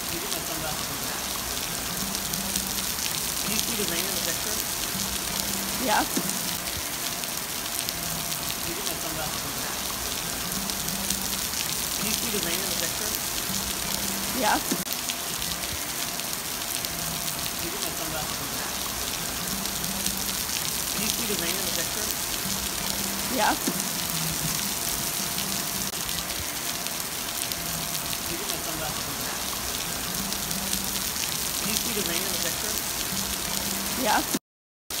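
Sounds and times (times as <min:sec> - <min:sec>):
rain falling on pool and pavement: 0:00.0 - 0:35.0.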